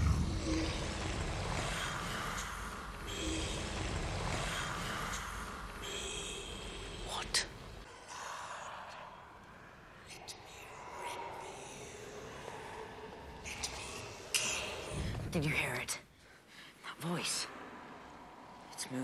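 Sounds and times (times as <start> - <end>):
deep rumble: 0.0 - 7.8
whispered creature voice: 7.0 - 16.0.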